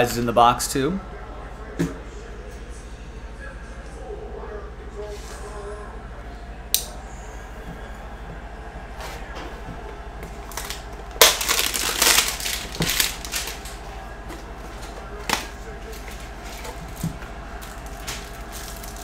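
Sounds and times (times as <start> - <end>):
cardboard and plastic crinkling: 10.4 - 13.8, 15.2 - 19.0.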